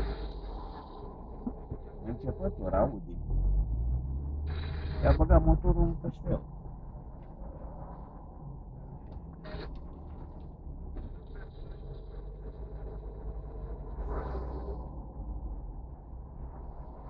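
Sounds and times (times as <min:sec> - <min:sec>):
car engine and road rumble: 0:00.0 - 0:17.0.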